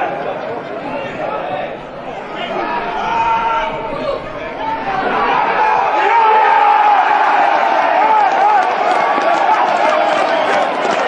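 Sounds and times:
stadium crowd voices: 0.0 - 11.0.

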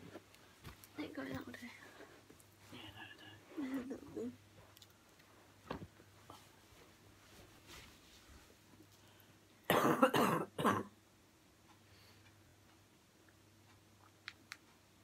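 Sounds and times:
person coughing: 9.7 - 10.9.

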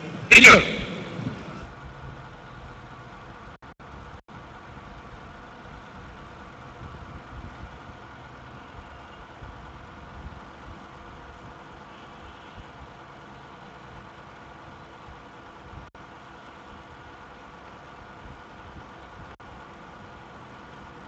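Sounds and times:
faint hum: 0.0 - 1.7
crowded hall rumble and hiss: 0.0 - 2.4.

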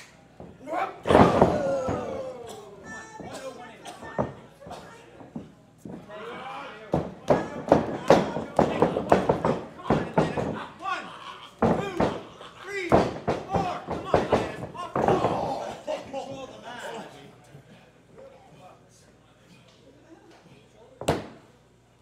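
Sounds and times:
wrestlers thudding on ring canvas: 0.4 - 2.4, 6.9 - 10.8, 11.6 - 15.8, 21.0 - 21.4
crowd shouting: 0.6 - 3.6, 6.2 - 16.0.

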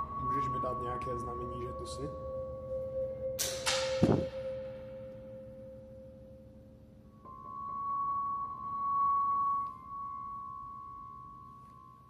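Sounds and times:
steady two-tone hum: 0.0 - 12.0.

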